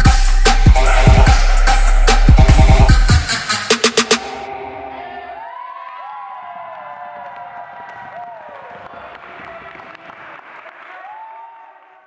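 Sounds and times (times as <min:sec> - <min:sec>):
electronic dance music: 0:00.0 - 0:05.6
voices cheering and whooping: 0:04.9 - 0:12.0.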